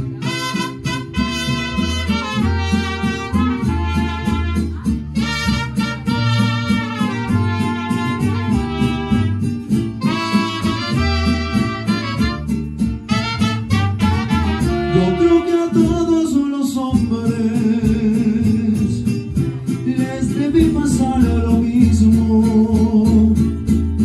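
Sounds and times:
mariachi band playing: 0:00.0 - 0:24.0.

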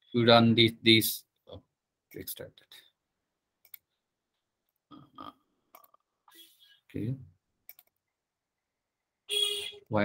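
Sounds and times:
computer mouse clicks: 0:03.6 - 0:03.9, 0:07.7 - 0:08.0.

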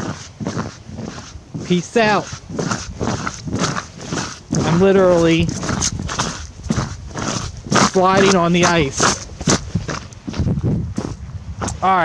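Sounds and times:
boot footsteps on grass and ice: 0:00.0 - 0:12.0.

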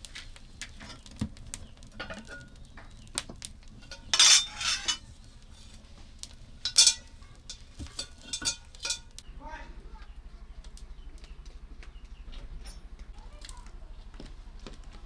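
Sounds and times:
burning straw crackling: 0:00.0 - 0:15.0
metal pot and plate clanking: 0:02.0 - 0:02.7, 0:03.8 - 0:05.8, 0:06.6 - 0:09.2.

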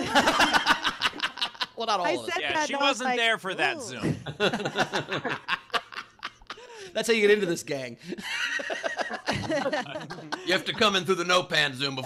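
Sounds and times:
people laughing: 0:00.0 - 0:02.3, 0:03.7 - 0:06.9, 0:08.1 - 0:11.2.

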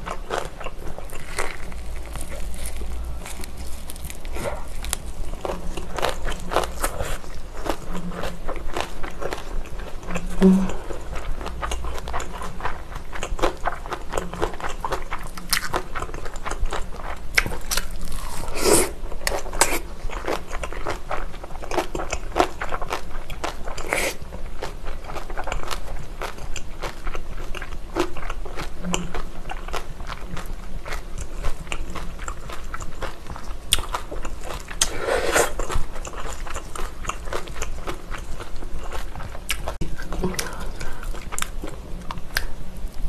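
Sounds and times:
person chewing food: 0:00.0 - 0:43.0.

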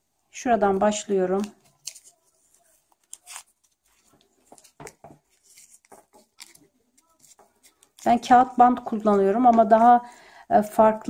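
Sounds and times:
paper tape crinkling: 0:01.2 - 0:08.4.

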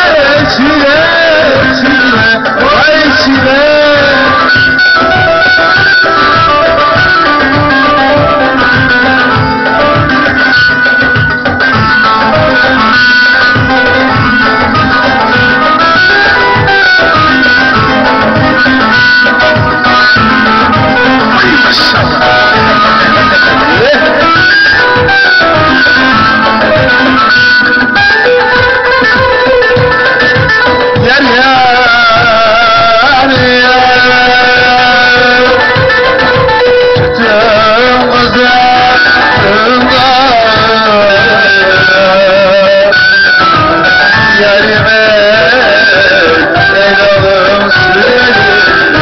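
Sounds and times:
plucked string melody: 0:00.0 - 0:49.0
steady drum beat: 0:00.0 - 0:49.0.

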